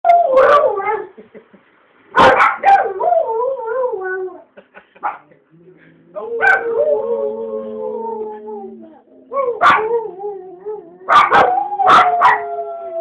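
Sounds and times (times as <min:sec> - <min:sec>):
dogs howling: 0:06.2 - 0:13.0.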